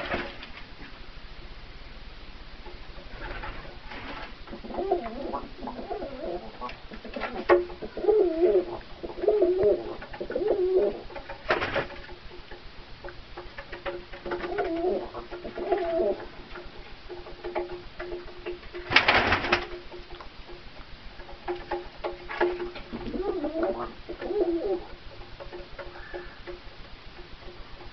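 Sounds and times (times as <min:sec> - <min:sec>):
pigeons cooing: 0:03.0 - 0:11.9, 0:13.8 - 0:19.8, 0:22.4 - 0:27.9.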